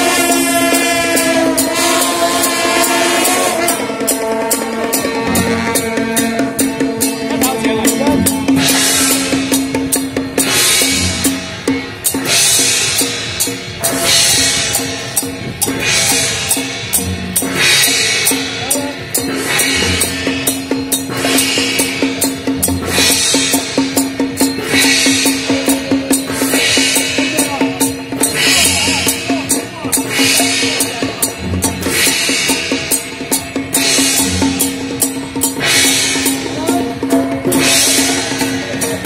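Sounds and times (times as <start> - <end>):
cymbal crash: 0.0 - 39.0
drums beating fast rhythm: 0.0 - 39.0
held pitched note: 0.0 - 39.0.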